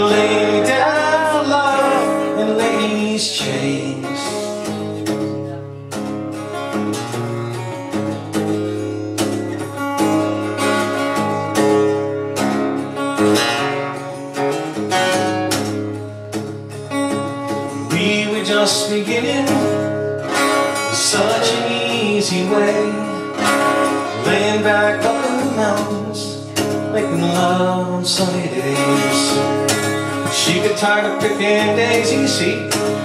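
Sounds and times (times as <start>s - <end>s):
acoustic guitar strumming: 0.0s - 33.0s.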